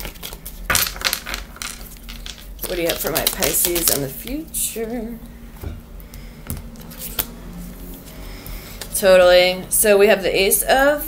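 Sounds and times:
cards being shuffled: 0.0s - 4.4s, 6.5s - 7.3s.

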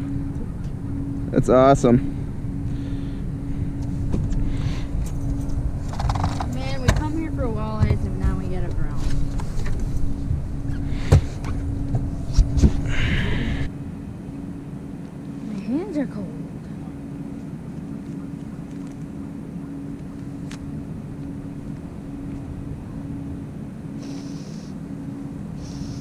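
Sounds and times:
boat motor running: 0.0s - 26.0s.

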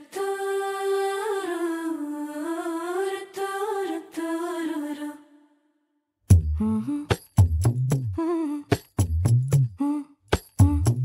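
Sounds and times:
person humming: 8.1s - 8.7s, 9.7s - 11.0s.

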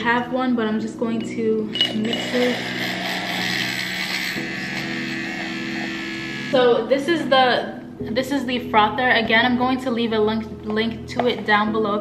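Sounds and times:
milk frother buzzing whine: 1.8s - 7.0s.

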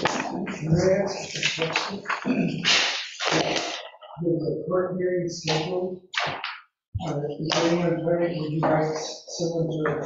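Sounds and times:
person speaking: 0.0s - 10.0s.

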